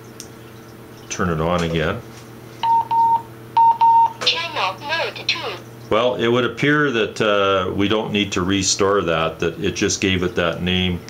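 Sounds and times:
handheld radio beeping: 0:02.6 - 0:05.6.

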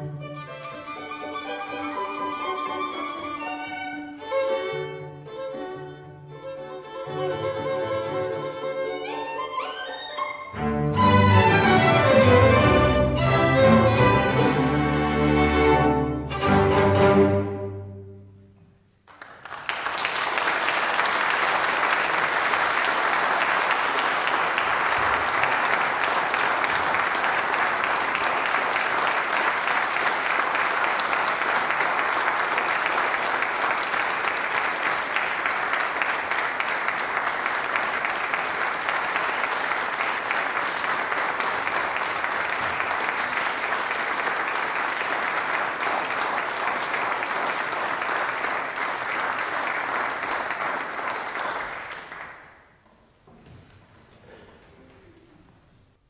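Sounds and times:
audience applauding: 0:19.0 - 0:52.8.

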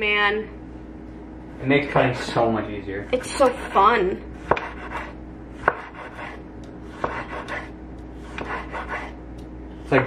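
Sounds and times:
knife slicing tomato: 0:03.4 - 0:09.2.

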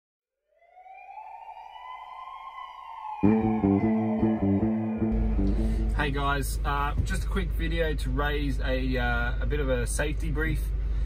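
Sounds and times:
siren wailing: 0:00.5 - 0:06.2.

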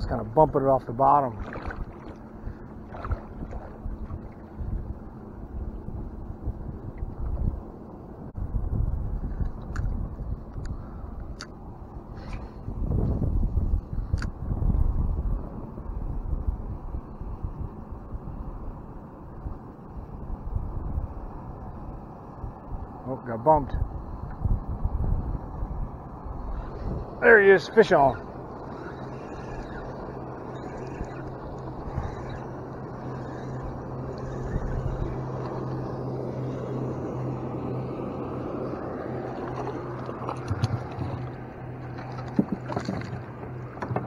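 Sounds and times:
wind buffeting microphone: 0:00.0 - 0:44.0
water lapping against boat hull: 0:01.1 - 0:05.2, 0:39.0 - 0:44.0.

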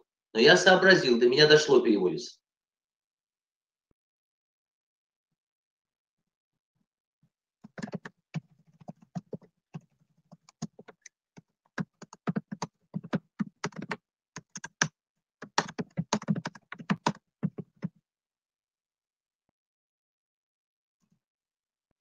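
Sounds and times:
keyboard typing clicks: 0:07.7 - 0:08.1, 0:11.8 - 0:17.9.

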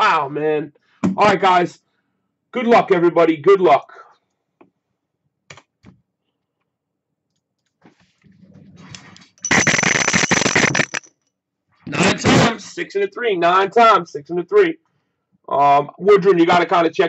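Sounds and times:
dice clattering: 0:09.4 - 0:11.1.

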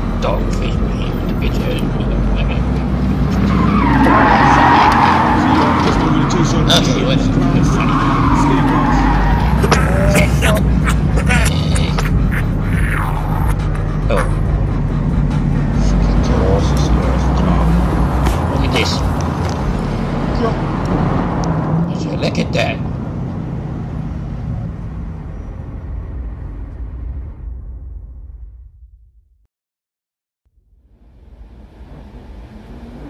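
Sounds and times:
scattered voices: 0:00.0 - 0:22.8
car engine running: 0:00.0 - 0:27.2, 0:30.7 - 0:33.0
music: 0:05.4 - 0:20.7.

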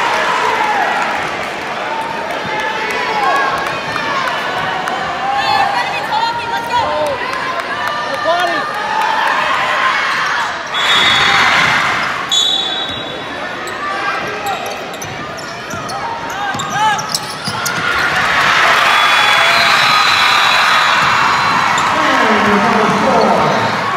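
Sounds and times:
crowd cheering: 0:00.0 - 0:23.9
sneakers squeaking on court: 0:12.3 - 0:18.2.

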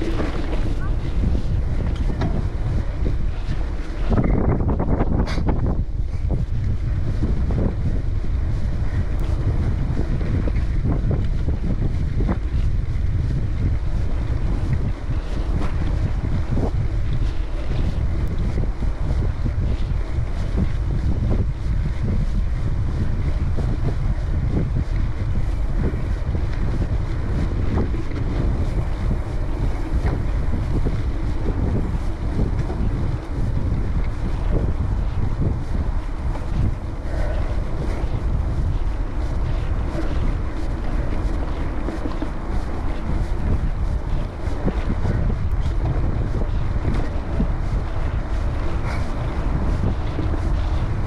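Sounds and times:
tyres rumbling on dirt trail: 0:00.0 - 0:51.0
wind buffeting microphone: 0:00.0 - 0:51.0.

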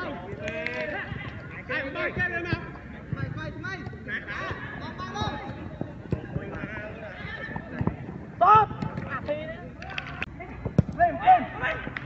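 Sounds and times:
football being kicked: 0:05.1 - 0:09.3, 0:10.6 - 0:11.2.

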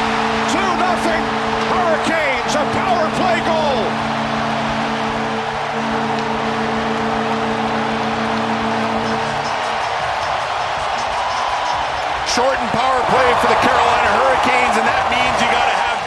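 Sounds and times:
goal horn blaring: 0:00.0 - 0:12.2
crowd cheering: 0:00.0 - 0:16.0.

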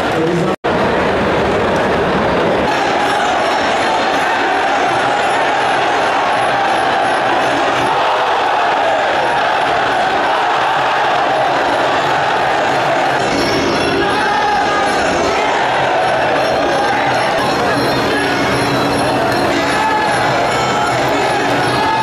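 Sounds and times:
crowd noise: 0:00.0 - 0:22.0.

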